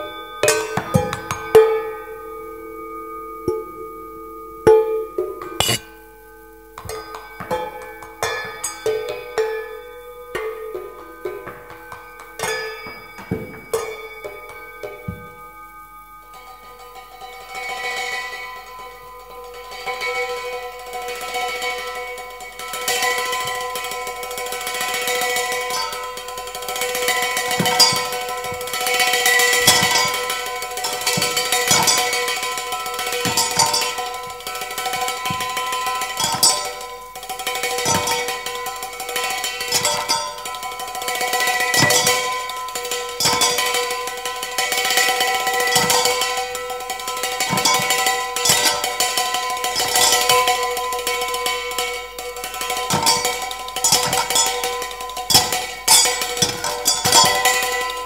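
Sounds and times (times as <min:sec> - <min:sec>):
metal bowls ringing: 0:00.0 - 0:58.0
stick tapping a metal cup: 0:03.5 - 0:03.7, 0:04.7 - 0:06.0, 0:06.8 - 0:15.4, 0:23.2 - 0:58.0.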